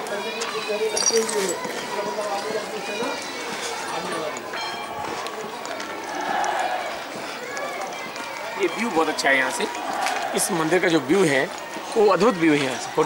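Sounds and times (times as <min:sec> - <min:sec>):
footsteps on outdoor path: 0:00.0 - 0:13.0
people talking indistinctly: 0:00.0 - 0:13.0.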